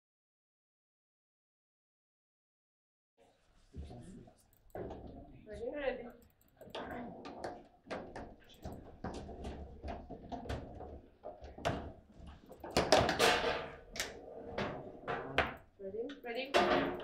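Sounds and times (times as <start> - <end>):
ball knocking plastic players: 6.8 - 14.1.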